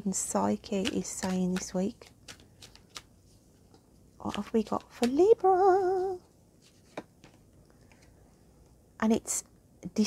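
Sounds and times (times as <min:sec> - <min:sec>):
cards being shuffled: 0:00.7 - 0:08.1.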